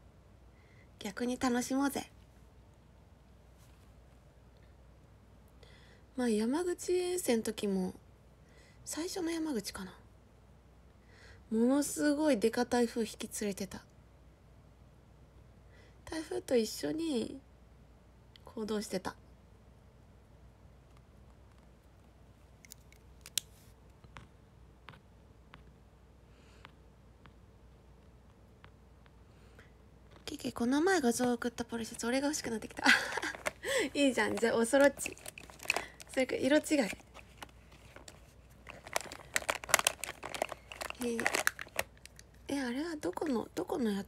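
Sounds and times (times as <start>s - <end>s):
faint room noise: 0.0s - 44.0s
small crackles: 20.8s - 25.1s, 31.2s - 43.4s
crinkling and clicking: 20.9s - 24.3s, 31.1s - 43.4s.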